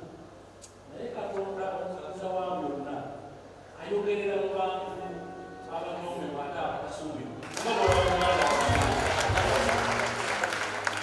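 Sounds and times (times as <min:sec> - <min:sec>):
low steady hum: 0:00.0 - 0:11.0
audience applauding: 0:07.4 - 0:11.0.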